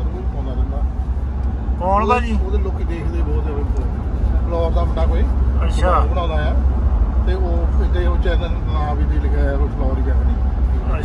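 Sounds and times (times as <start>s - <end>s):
people talking: 0.0s - 0.9s, 1.8s - 6.6s, 7.3s - 11.0s
car cabin road rumble: 0.0s - 11.0s.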